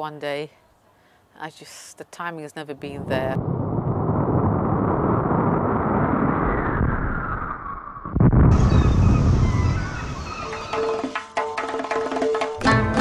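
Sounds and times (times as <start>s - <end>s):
loud low rumble: 3.0s - 10.0s
deep boom: 3.0s - 10.2s.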